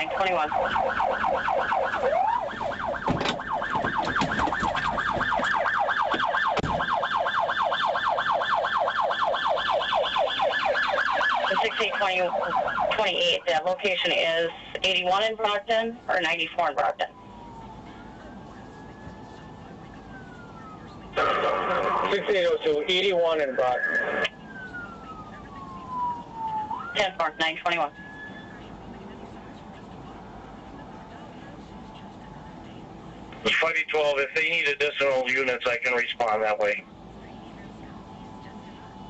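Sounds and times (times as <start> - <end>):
police siren yelping: 0.0 - 29.2.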